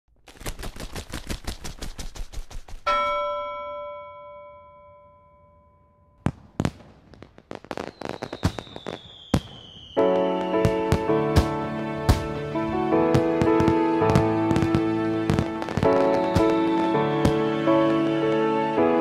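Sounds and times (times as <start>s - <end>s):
rapid crackling pops: 0.1s - 2.9s, 13.1s - 18.6s
fireworks bangs and pops: 0.1s - 3.3s, 6.2s - 18.8s
bell-like chime: 2.9s - 6.3s
falling whistle: 7.8s - 11.6s, 13.8s - 19.0s.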